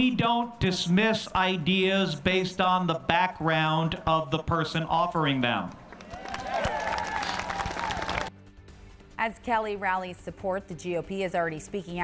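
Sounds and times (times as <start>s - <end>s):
crowd clapping and cheering: 5.7s - 8.4s.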